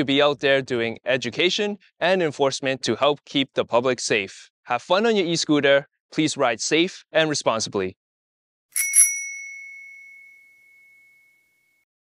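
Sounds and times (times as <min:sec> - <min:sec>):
bicycle bell ringing: 0:08.8 - 0:11.8.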